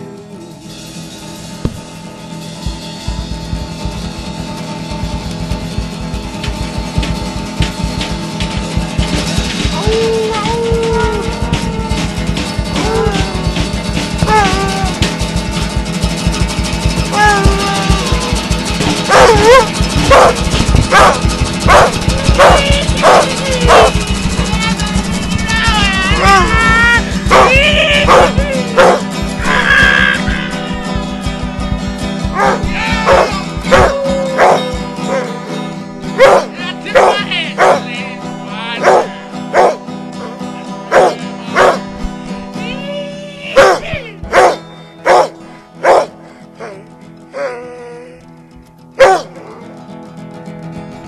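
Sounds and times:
dog barking: 19.0s - 24.0s, 27.3s - 29.1s, 32.3s - 34.7s, 36.2s - 37.8s, 38.8s - 39.8s, 40.9s - 41.8s, 43.6s - 46.1s, 49.0s - 49.3s.

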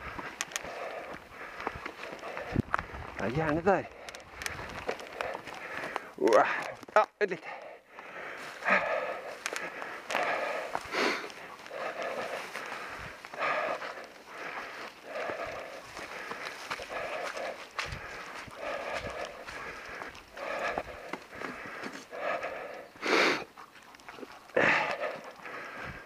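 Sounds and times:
heavy panting breaths: 0.0s - 6.8s, 7.4s - 26.0s.

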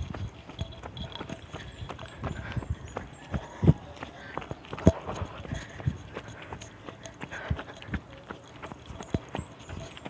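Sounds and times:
jogging footsteps on concrete: 0.0s - 10.0s.

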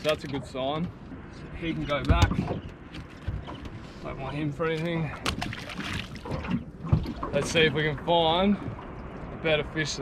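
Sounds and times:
fish splashing at water surface: 5.2s - 7.3s.

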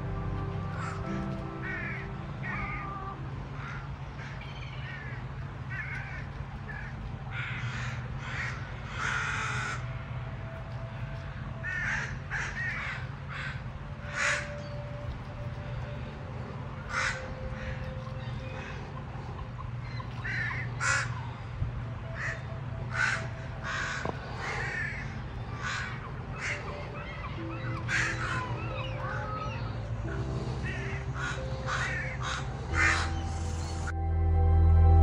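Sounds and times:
soft background music: 0.0s - 35.0s
crows cawing: 0.7s - 9.9s, 11.6s - 14.7s, 16.8s - 21.5s, 22.1s - 33.7s.

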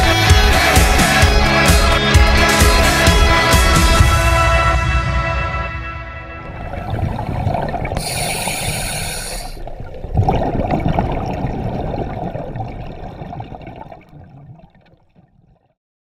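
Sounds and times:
rush of bubbles: 6.4s - 15.7s
regulator air hiss: 8.0s - 9.6s.

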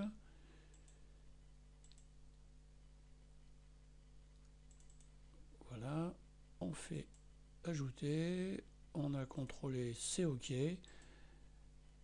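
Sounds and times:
steady low hum: 0.0s - 12.0s
computer mouse clicks: 0.7s - 1.0s, 1.8s - 2.1s, 4.3s - 5.2s.

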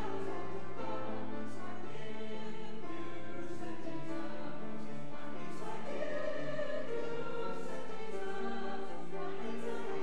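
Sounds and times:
voices singing a slow hymn: 0.0s - 10.0s.

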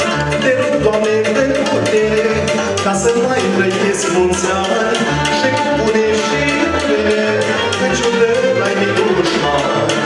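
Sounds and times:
live band music: 0.0s - 10.0s
rhythmic bass line: 0.0s - 10.0s
man singing into a microphone: 0.1s - 10.0s.

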